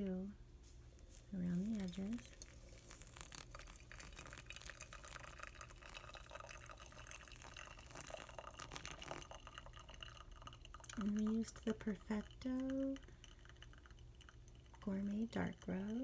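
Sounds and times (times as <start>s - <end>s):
water trickling onto coffee grounds: 0.6s - 16.0s.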